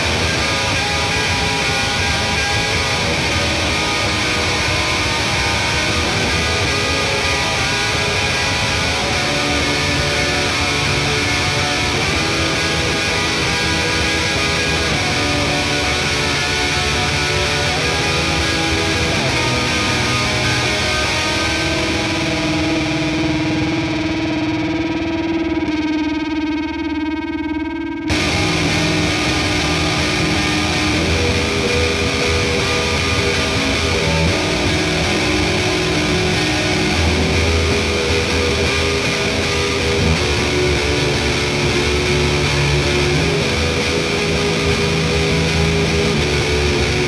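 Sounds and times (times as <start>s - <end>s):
distorted electric guitar note: 0.0s - 47.0s.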